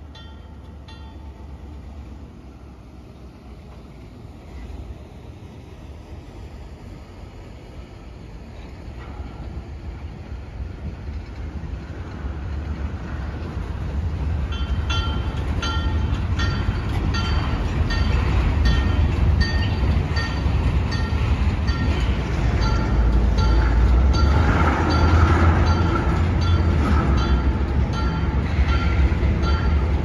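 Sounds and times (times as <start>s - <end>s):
diesel locomotive rumble: 0.0s - 30.0s
train cars rolling: 0.0s - 30.0s.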